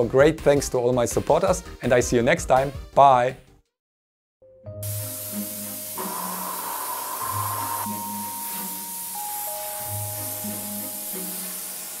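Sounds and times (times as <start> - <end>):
compressed air hissing: 4.8 - 12.0.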